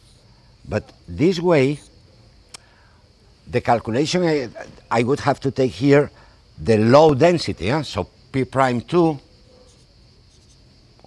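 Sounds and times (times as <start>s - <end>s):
marker pen scratching on paper: 9.6s - 10.6s.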